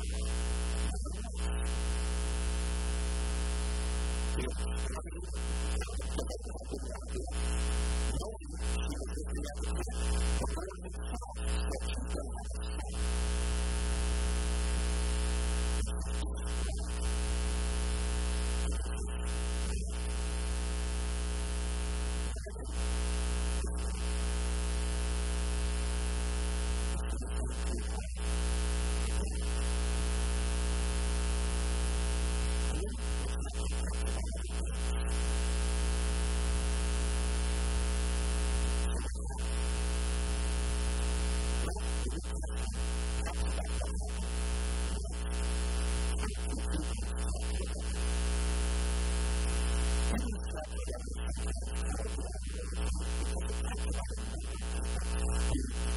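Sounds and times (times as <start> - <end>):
electrical mains hum and buzz: 0.0 - 55.9.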